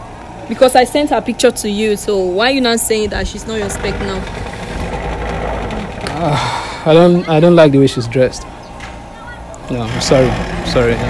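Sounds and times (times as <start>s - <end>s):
small motor rumbling: 0.0s - 11.0s.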